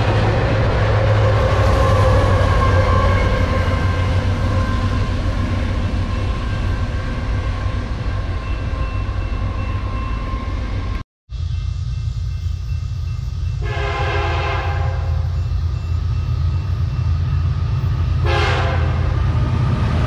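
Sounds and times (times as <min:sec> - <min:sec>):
diesel locomotive engine rumble: 0:00.0 - 0:20.0.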